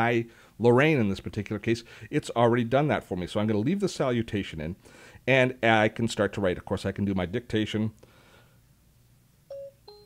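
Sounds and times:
electronic dictation chime: 9.5s - 10.0s.

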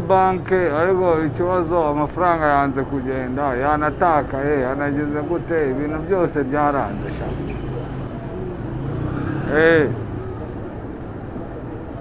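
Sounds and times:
motorcycle engines running: 0.0s - 12.0s.

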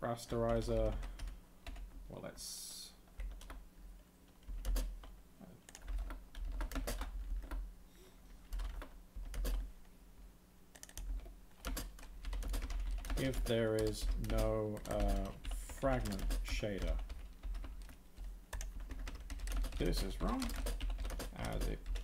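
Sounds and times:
typing on computer keyboard: 0.3s - 2.0s, 3.2s - 3.6s, 4.4s - 5.1s, 5.7s - 7.6s, 8.5s - 9.7s, 10.7s - 22.0s.

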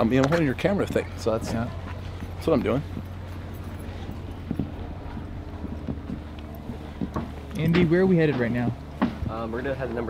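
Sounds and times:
footsteps on paved path: 0.0s - 10.0s
steady low rumble: 0.0s - 10.0s.

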